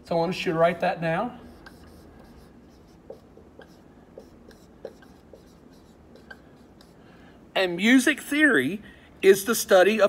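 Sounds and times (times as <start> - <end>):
marker squeaking on whiteboard: 1.4 - 7.0.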